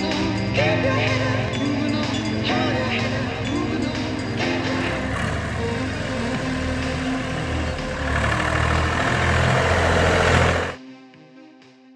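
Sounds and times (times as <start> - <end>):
music playing: 0.0 - 11.9
tractor engine running: 1.0 - 10.8.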